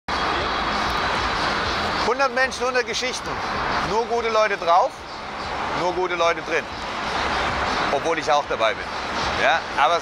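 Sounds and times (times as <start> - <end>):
faint voices: 0.1 - 10.0
loud engine-like street roar: 0.1 - 10.0.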